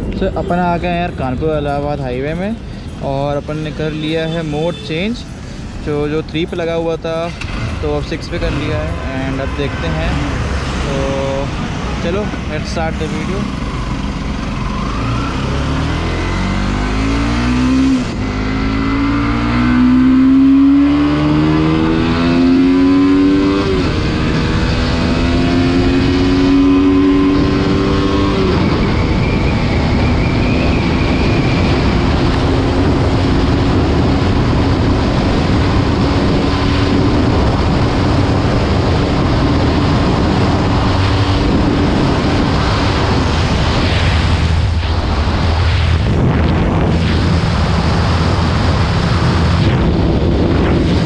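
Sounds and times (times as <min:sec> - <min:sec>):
wind rushing over microphone: 0:00.0 - 0:03.8, 0:05.0 - 0:51.0
motorcycle engine at full throttle: 0:00.0 - 0:51.0.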